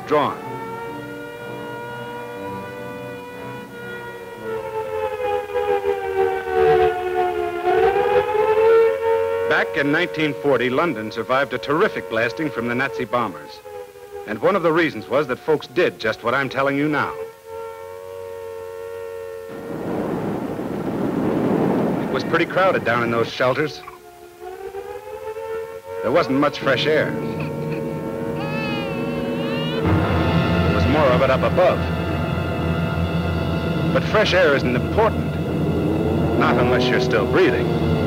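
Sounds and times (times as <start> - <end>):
held musical chord: 0.0 - 21.0, 22.1 - 38.0
air-raid siren wailing: 0.0 - 38.0
underground train rumbling roar: 26.4 - 38.0.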